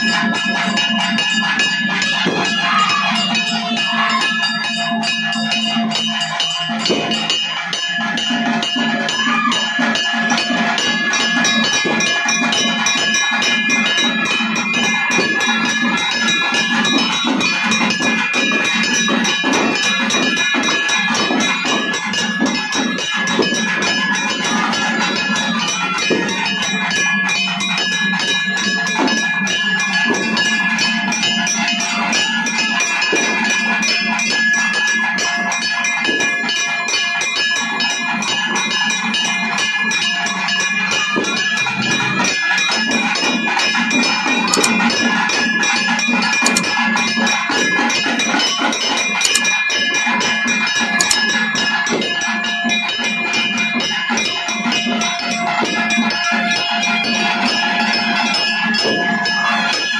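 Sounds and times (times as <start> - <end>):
bells ringing: 0.0 - 59.9
drum ensemble playing fast beats: 0.0 - 59.9.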